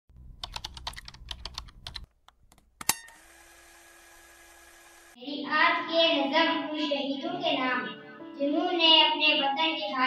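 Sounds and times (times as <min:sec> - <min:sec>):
keyboard key clicks: 0:00.4 - 0:03.0.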